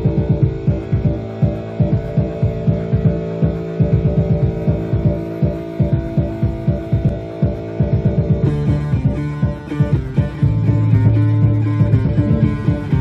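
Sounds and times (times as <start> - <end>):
fast pulsing bass line: 0.0 - 13.0
synthesizer drone: 0.0 - 13.0.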